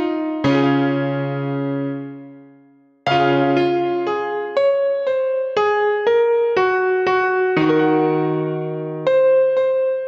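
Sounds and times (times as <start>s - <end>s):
held keyboard chord: 0.0s - 10.0s.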